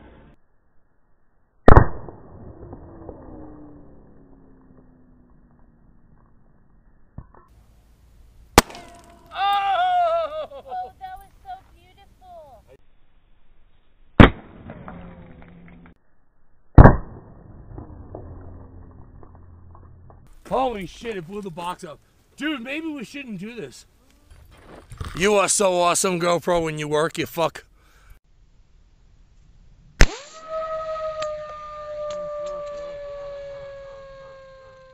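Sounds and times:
rifle shot: 1.6s - 3.7s, 8.6s - 9.4s, 14.2s - 15.8s, 16.8s - 18.2s, 30.0s - 30.6s
rifle shots: 8.6s - 9.3s, 14.2s - 15.3s, 30.0s - 30.5s.

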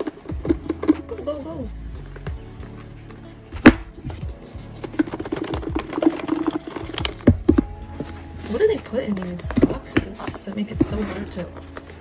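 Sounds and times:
lofi hip-hop music: 0.0s - 12.0s.

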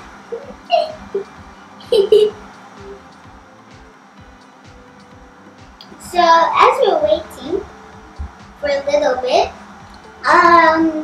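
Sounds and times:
girl giggling: 0.4s - 2.4s.

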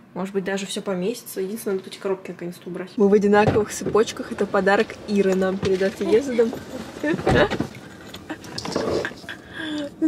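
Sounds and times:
woman laughing: 8.2s - 10.0s.

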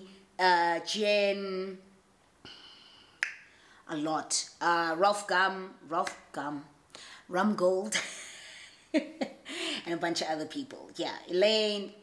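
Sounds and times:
soft breath: 2.4s - 3.9s, 6.9s - 7.3s, 9.4s - 9.9s.

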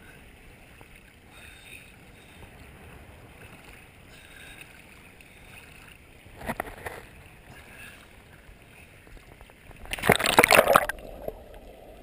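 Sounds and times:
water lapping and sloshing: 0.0s - 12.0s.

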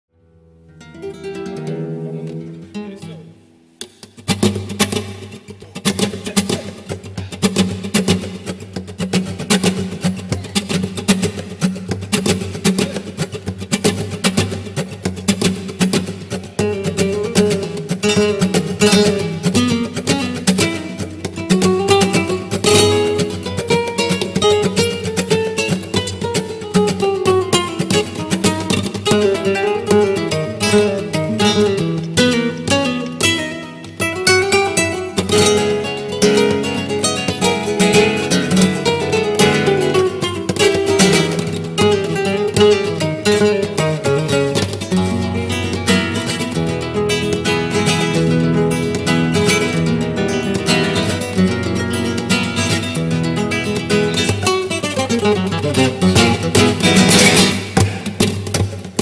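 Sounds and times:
flamenco guitars playing: 0.2s - 59.0s.

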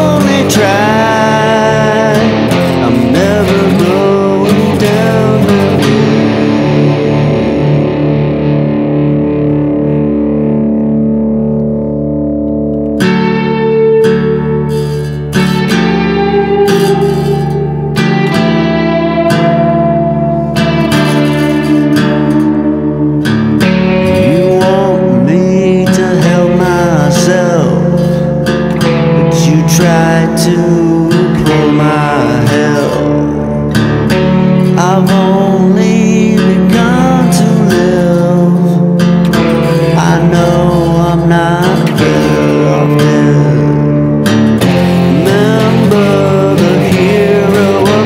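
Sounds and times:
strummed acoustic guitar chords: 0.0s - 48.0s.

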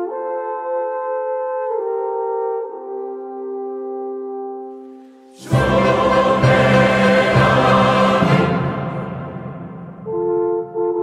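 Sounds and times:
choir and orchestra: 5.3s - 10.9s
held horn chord: 5.4s - 10.7s.

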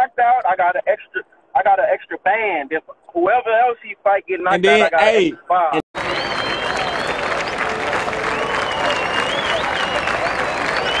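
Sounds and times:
crowd applauding and cheering: 6.0s - 11.0s
sliding whistles: 6.0s - 11.0s.

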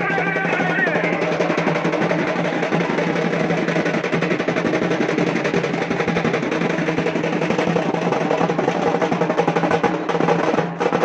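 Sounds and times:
fast continuous drumming: 0.0s - 11.0s.

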